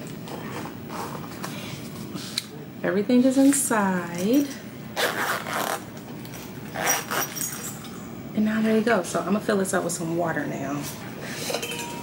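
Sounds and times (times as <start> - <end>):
zipper being pulled shut: 5.0 - 5.8, 6.8 - 7.4.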